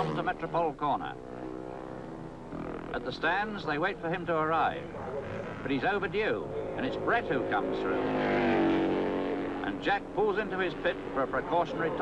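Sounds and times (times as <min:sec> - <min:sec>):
motorcycle engine at high revs: 0:00.0 - 0:12.0.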